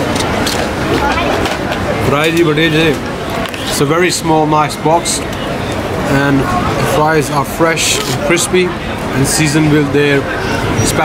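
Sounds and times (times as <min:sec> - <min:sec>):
outdoor background noise: 0:00.0 - 0:11.0
voices: 0:00.0 - 0:11.0.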